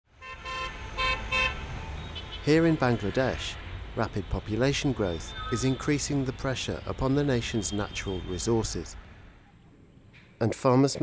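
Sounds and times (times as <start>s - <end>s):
street traffic rumble: 0.1s - 10.6s
vehicle horn tooting: 0.2s - 3.8s, 7.4s - 8.6s.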